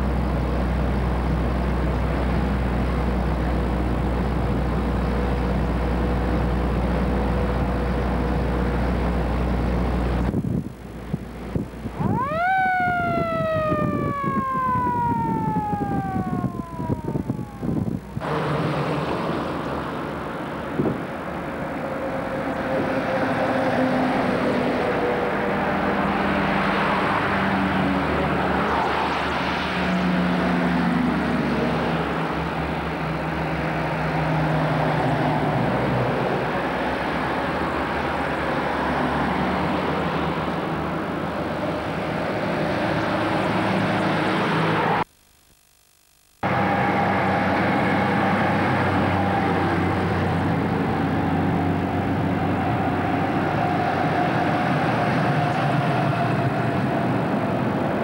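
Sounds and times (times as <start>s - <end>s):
military vehicles driving by: 0.0s - 45.0s, 46.4s - 58.0s
siren falling in pitch: 11.9s - 18.2s.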